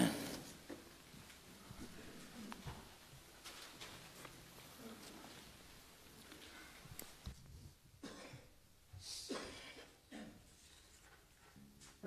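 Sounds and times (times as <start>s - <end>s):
faint cough: 8.0s - 8.6s, 9.2s - 10.5s.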